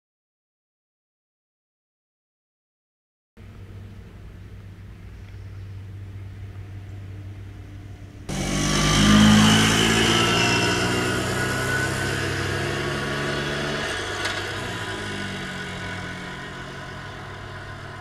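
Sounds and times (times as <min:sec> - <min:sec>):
small vehicle engine passing by: 0:03.4 - 0:18.0.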